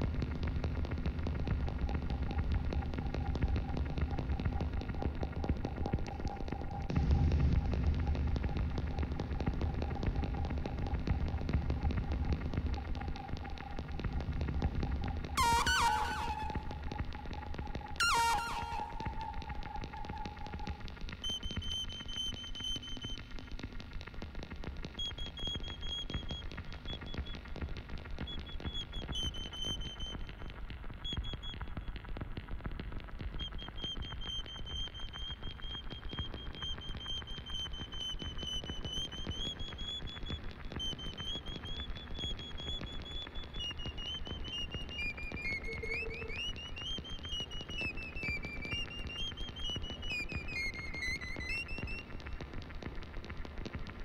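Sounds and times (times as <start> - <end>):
high whistling feedback tone: 15.0 - 20.8, 40.8 - 52.2.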